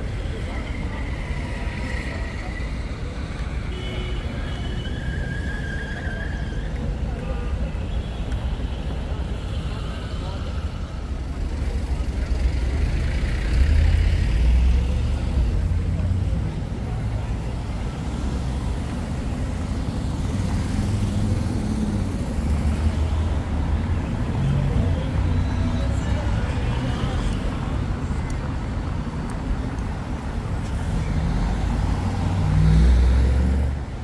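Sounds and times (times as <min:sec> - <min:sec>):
faint voices of passers-by: 0:00.0 - 0:34.0
low rumble of road traffic: 0:00.0 - 0:34.0.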